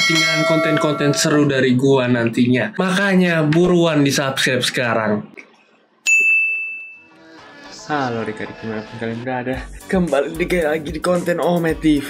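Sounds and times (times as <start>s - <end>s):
high ringing ding: 0.0s - 1.6s, 6.0s - 7.2s
soft music: 0.0s - 2.4s, 7.0s - 12.0s.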